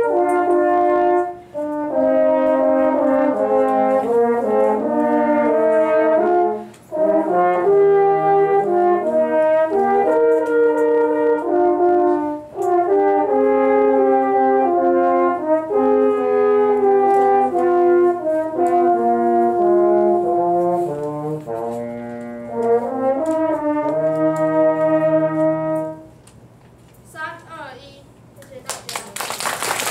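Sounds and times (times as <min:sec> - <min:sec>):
french horns playing: 0:00.0 - 0:26.2.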